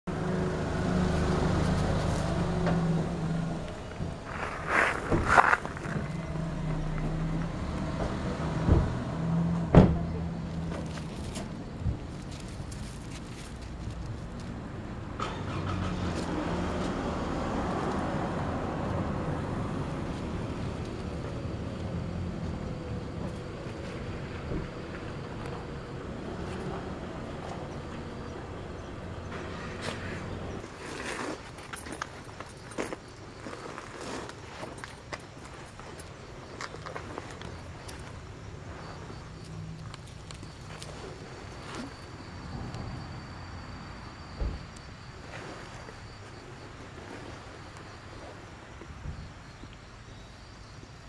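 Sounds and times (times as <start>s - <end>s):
vehicle passing by: 0.1s - 11.4s, 15.1s - 31.9s
engine running low hum: 0.1s - 50.4s.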